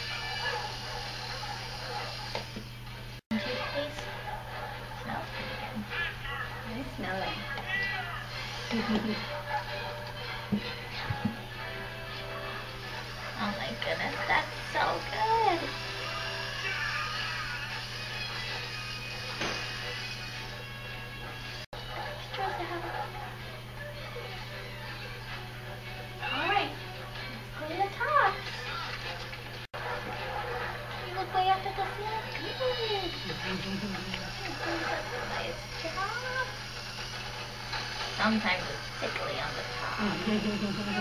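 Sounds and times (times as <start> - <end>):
faint background music: 0.0 - 41.0.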